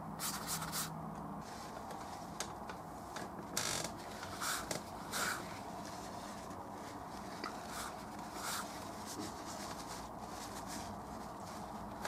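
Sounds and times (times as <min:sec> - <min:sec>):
paper towel rubbing on canvas: 0:03.7 - 0:12.0.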